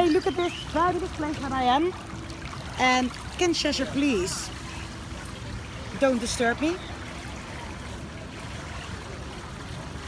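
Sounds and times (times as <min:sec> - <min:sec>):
pool water trickling: 0:00.0 - 0:10.0.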